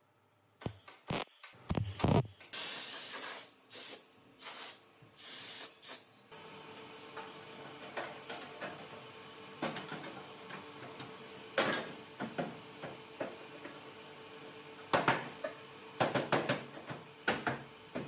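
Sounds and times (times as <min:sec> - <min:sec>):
short bursts of hissing: 0:02.5 - 0:06.1.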